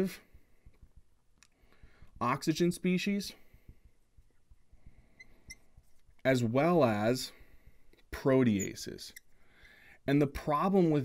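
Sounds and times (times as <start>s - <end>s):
marker squeaking on whiteboard: 5.1s - 6.1s, 8.4s - 9.4s.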